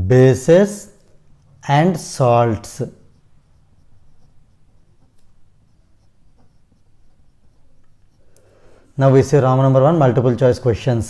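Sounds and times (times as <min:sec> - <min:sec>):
pen scratching on paper: 0:01.4 - 0:08.3.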